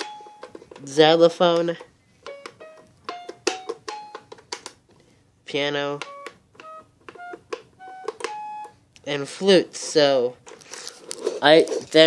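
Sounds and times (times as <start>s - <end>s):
toy piano electronic xylophone notes: 0.0s - 0.9s, 2.2s - 4.4s, 6.0s - 8.8s.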